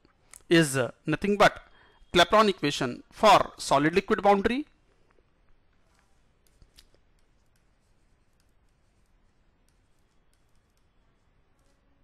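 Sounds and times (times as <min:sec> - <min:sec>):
stylus tapping on pen tablet: 0:06.4 - 0:11.8.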